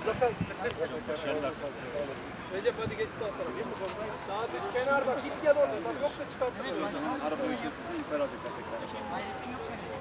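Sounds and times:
men talking in background: 0.0s - 10.0s.

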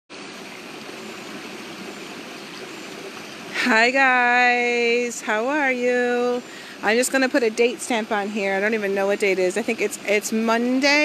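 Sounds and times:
water rushing over stones: 0.1s - 11.0s.

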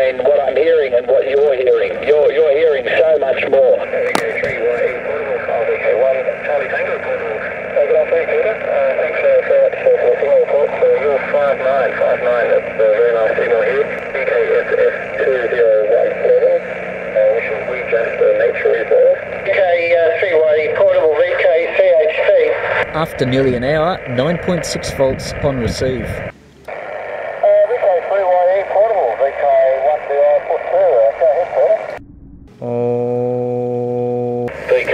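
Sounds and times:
narrow-band radio voices: 0.0s - 32.0s, 34.5s - 34.9s
steady radio hiss: 0.0s - 32.0s, 34.5s - 34.9s.

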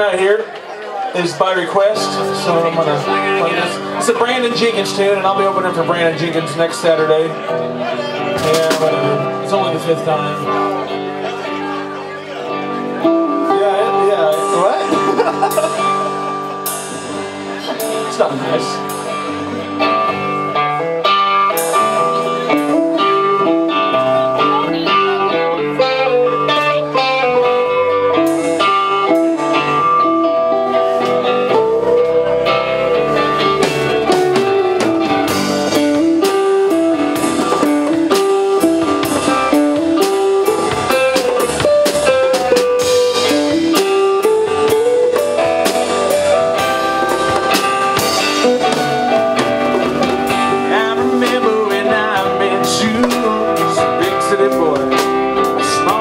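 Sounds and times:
live country-rock band: 0.0s - 56.0s.

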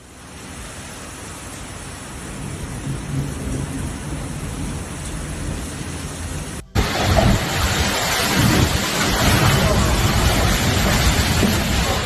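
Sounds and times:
heavy rain: 0.0s - 12.0s
storm wind: 0.0s - 12.0s.

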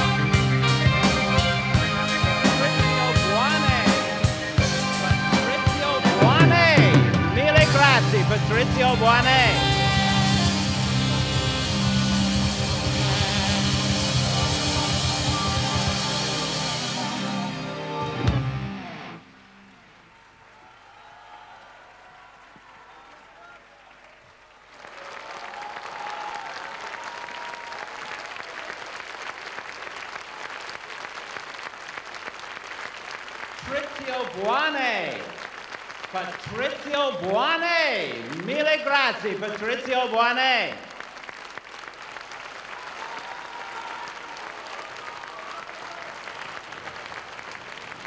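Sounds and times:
rock band with string orchestra: 0.0s - 19.3s
audience applause: 0.0s - 48.0s.

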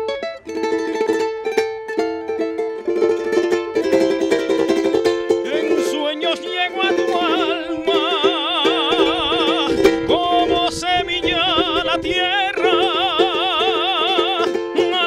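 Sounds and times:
man singing with vibrato: 5.3s - 15.0s.

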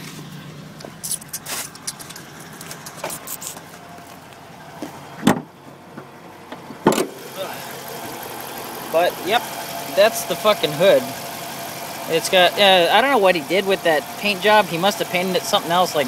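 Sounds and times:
car hood latch clicks and rattles: 5.2s - 5.5s, 6.5s - 7.2s.

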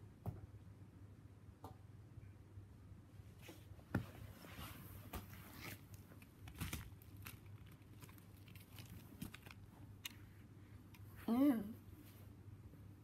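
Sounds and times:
soft crinkly rustles: 3.3s - 12.4s.

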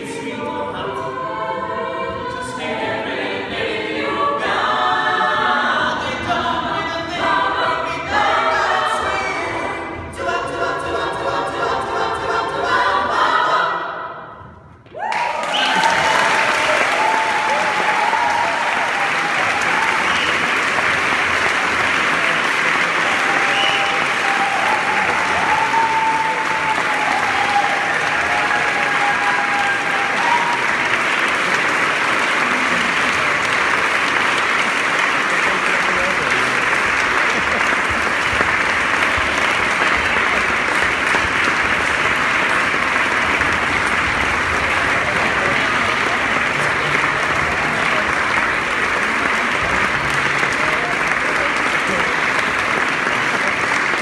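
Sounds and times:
audience applauding: 14.9s - 54.0s.

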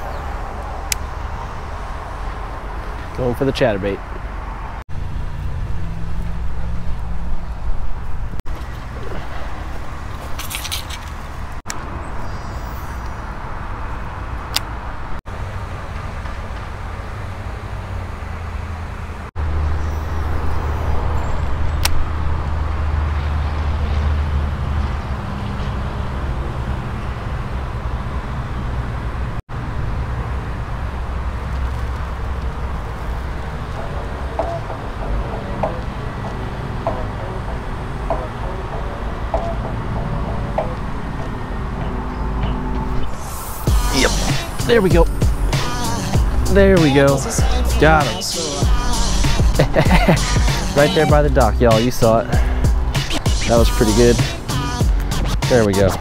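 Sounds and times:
low outdoor rumble: 18.9s - 56.0s.

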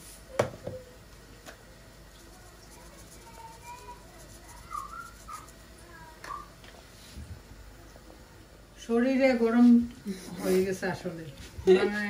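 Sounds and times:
faint high-pitched squeaks: 2.4s - 6.5s.

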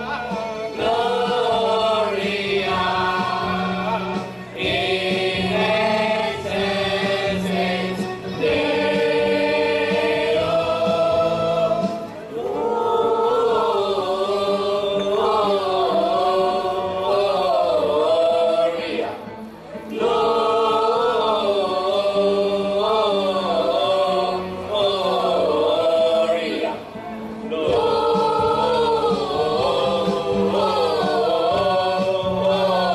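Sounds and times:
mixed choir singing a cappella: 0.0s - 32.9s.

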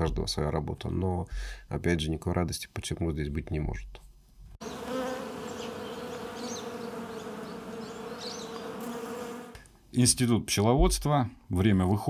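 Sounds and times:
bees buzzing: 4.6s - 9.6s.

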